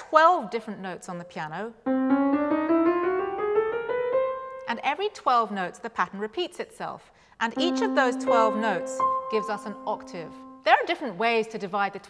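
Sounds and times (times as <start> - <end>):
grand piano chromatic scale: 1.8 - 5.1, 7.6 - 11.0.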